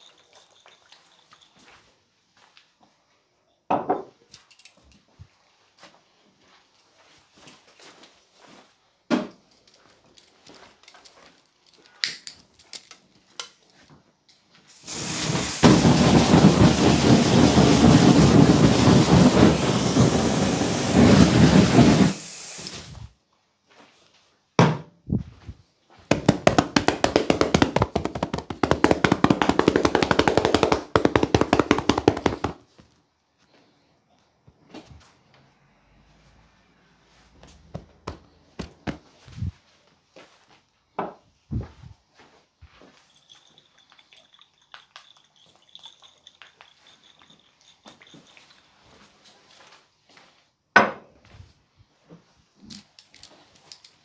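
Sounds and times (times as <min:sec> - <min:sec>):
knocks: 0:26.1 - 0:32.6
rapid slapping strokes: 0:26.1 - 0:32.6
hands rubbing hard: 0:26.2 - 0:32.6.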